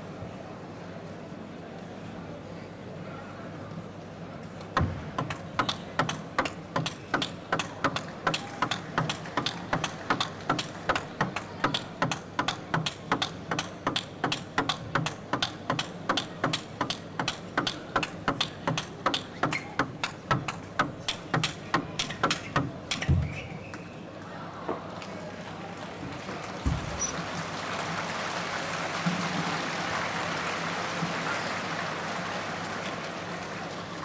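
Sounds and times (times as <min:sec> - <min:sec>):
table tennis ball clicking: 0:04.7 - 0:23.3.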